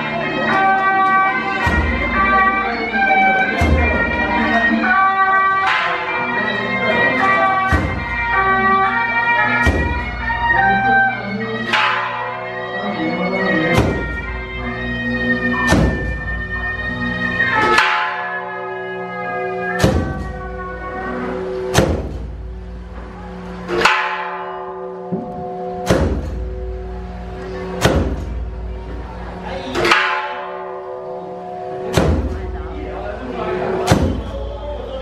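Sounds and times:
large metal bell ringing: 0.0 - 35.0.

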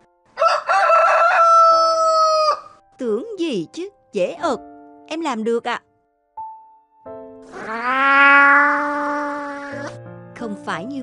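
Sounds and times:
rooster crowing: 0.4 - 2.7.

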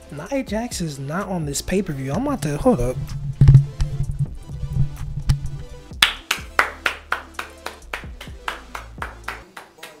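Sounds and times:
person clapping hands: 6.0 - 10.0.

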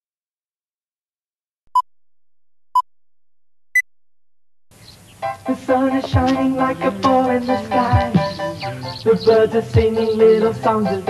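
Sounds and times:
music: 5.2 - 11.0.

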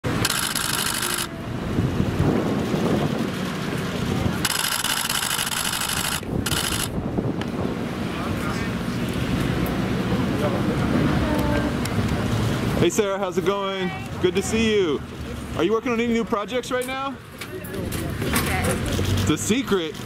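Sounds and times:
wind on microphone: 1.3 - 4.6, 5.7 - 8.6.

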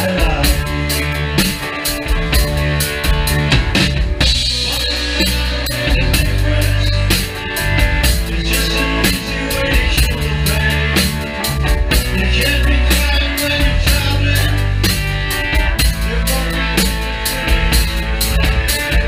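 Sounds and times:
drum kit beat: 0.0 - 19.0
electric guitar: 0.0 - 19.0
heavy bass line: 0.0 - 19.0
keyboards: 0.0 - 19.0.

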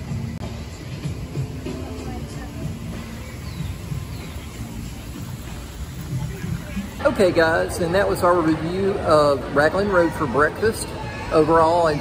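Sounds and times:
steady low outdoor rumble: 0.0 - 9.6.

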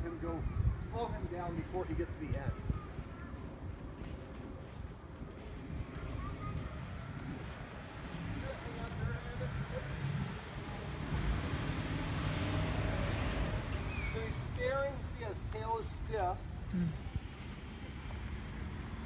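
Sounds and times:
street traffic: 0.0 - 19.0
wind rumble on microphone: 0.0 - 19.0.

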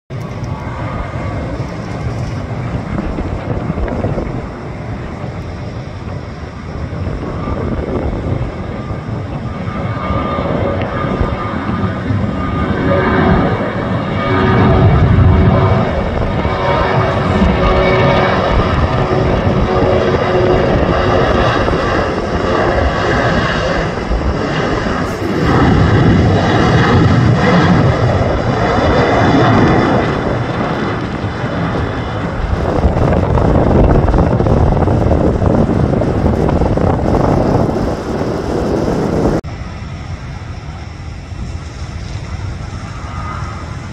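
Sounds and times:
jet engines rumbling: 0.1 - 43.9.

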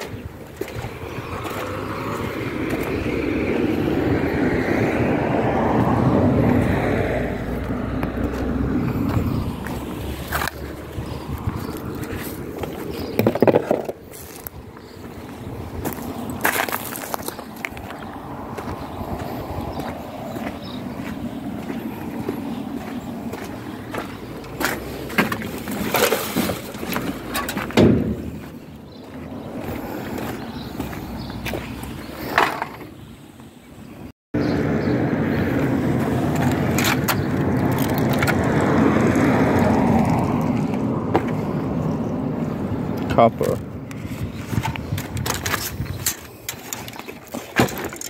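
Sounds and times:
outdoor background noise: 0.0 - 48.0
vehicle passing by: 0.7 - 13.4, 15.3 - 32.6, 34.4 - 44.2
rummaging through plastic and cardboard: 24.5 - 27.8, 44.2 - 48.0.

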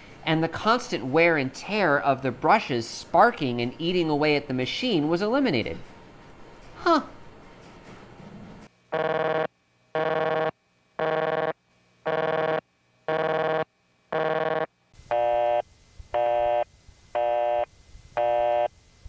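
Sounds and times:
telephone busy tone: 9.0 - 15.6.

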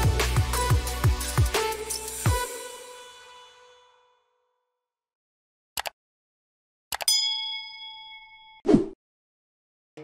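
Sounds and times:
bell ding: 7.1 - 8.6.

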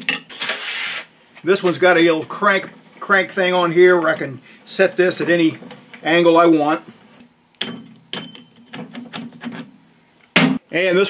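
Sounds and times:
metal knocks with metallic ring: 7.6 - 9.0.

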